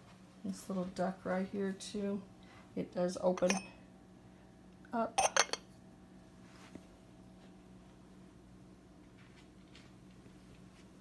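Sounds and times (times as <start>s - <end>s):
ceramic lid clinking against dish: 3.4s - 3.7s, 5.2s - 5.6s.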